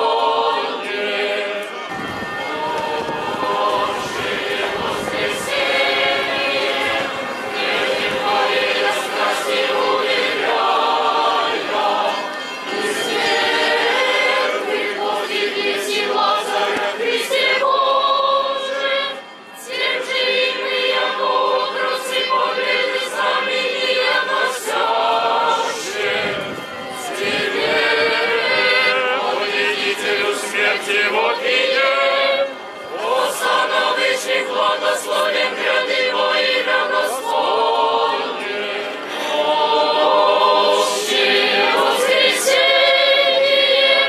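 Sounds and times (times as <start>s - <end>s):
choir singing: 0.0s - 44.0s.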